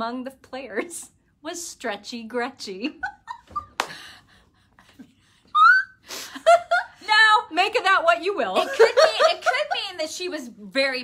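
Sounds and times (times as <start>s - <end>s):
woman squealing with laughter: 5.5s - 6.9s.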